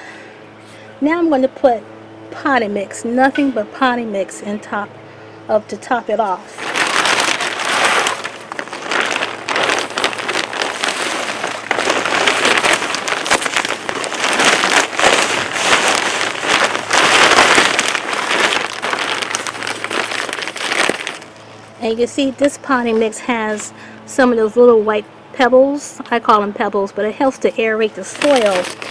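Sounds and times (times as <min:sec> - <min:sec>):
potting mix pouring from a bag: 0:06.5 - 0:21.4, 0:28.0 - 0:28.9.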